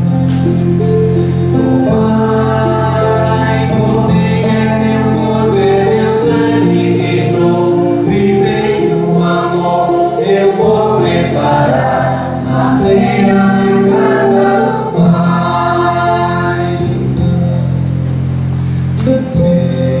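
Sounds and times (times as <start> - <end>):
electronic keyboard: 0.0 - 20.0
voices singing a hymn: 1.2 - 17.4.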